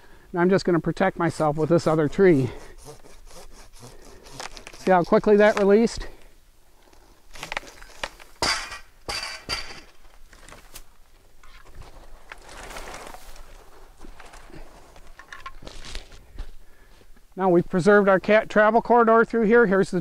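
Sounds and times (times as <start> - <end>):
branches brushing and snapping: 3.8 - 6.0, 6.8 - 8.4, 9.9 - 16.4
footsteps in dry leaves: 11.8 - 16.4.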